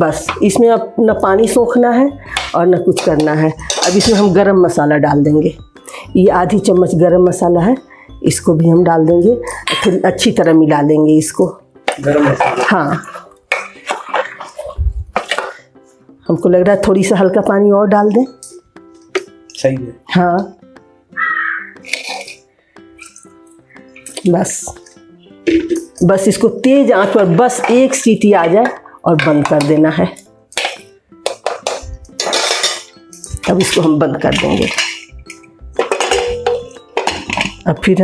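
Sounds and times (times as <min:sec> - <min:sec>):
ladle scraping and clinking on pot: 0:02.3 - 0:04.4, 0:11.8 - 0:15.7, 0:21.8 - 0:24.2, 0:26.6 - 0:29.9, 0:30.6 - 0:37.9.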